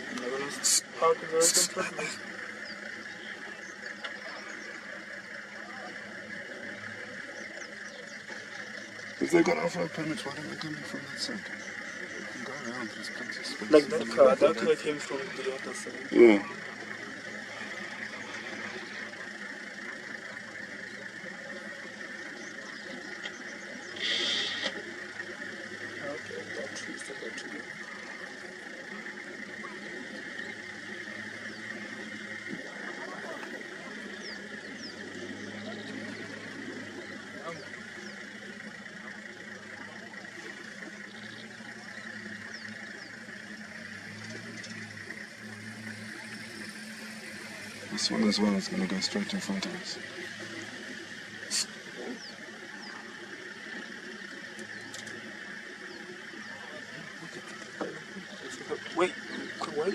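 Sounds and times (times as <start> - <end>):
high-pitched drone: 0.0 - 59.9
vehicle engines idling: 0.0 - 59.9
short hissing noise: 24.0 - 24.8.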